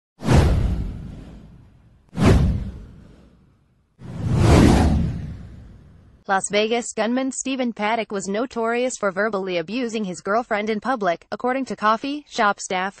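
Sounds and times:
whoosh sound effects: 0:00.2 - 0:06.2.

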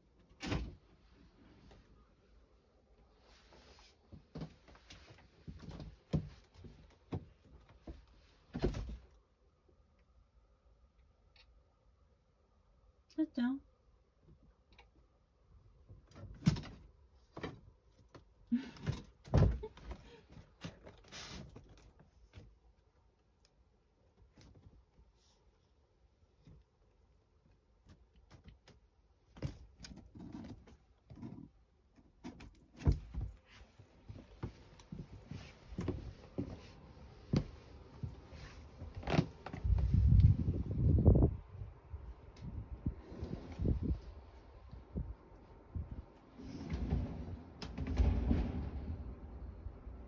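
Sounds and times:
wind rumbling on microphone: 0:39.5 - 0:50.0.

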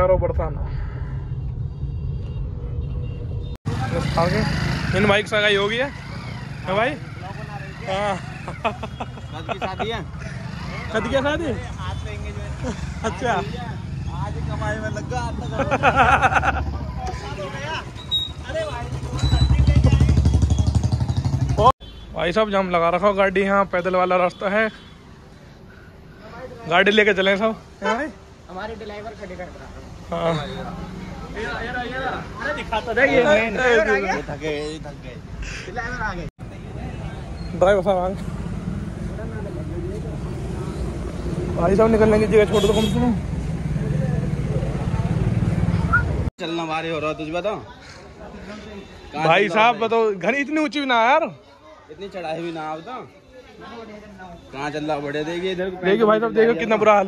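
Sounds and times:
low rumble of street noise: 0:00.0 - 0:57.0.

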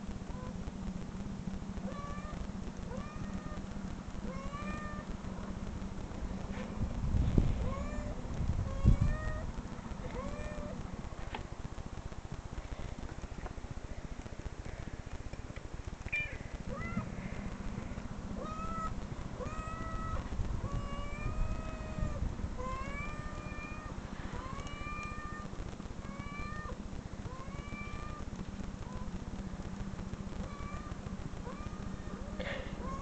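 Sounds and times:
steady low hum: 0:00.0 - 0:33.0.

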